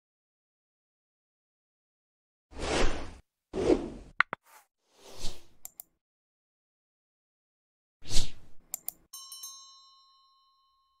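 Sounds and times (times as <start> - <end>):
bell ding: 9.1 - 11.0.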